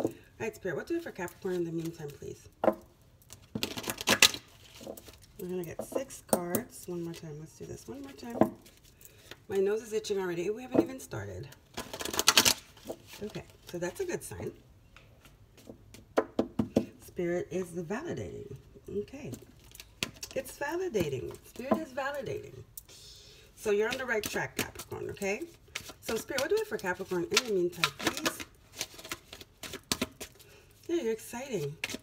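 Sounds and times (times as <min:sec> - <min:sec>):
cards being shuffled: 0:23.9 - 0:30.5, 0:31.6 - 0:32.0.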